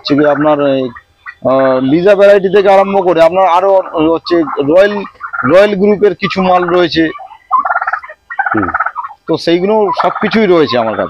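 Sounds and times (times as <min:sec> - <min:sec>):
poultry rattling call: 0:00.0 - 0:11.0.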